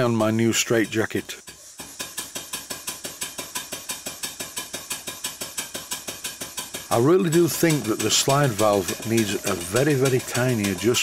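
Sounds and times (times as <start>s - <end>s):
steam engine exhaust beats: 0.0s - 11.0s.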